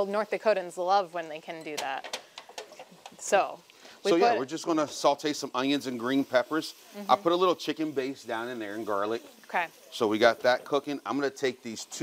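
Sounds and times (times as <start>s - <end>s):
kitchen items clicking and tapping: 1.6s - 3.2s.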